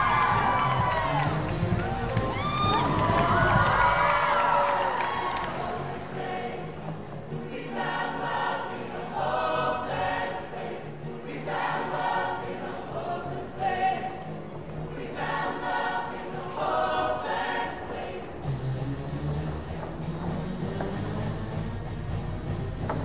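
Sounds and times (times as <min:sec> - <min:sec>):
choir singing in chorus: 0:00.0 - 0:19.1.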